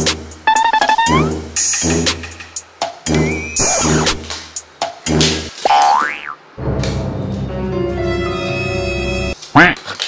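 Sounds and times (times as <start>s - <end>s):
background music: 0.0s - 5.6s, 6.6s - 9.4s.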